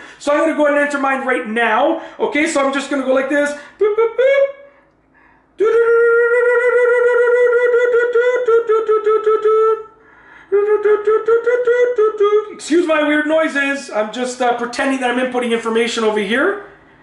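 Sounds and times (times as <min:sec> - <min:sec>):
man making fluttering vocal noises: 0:03.3 - 0:04.7, 0:05.6 - 0:13.7.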